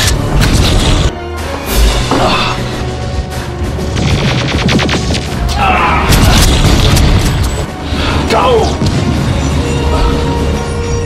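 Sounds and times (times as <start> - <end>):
dramatic action film music: 0.0 - 11.0.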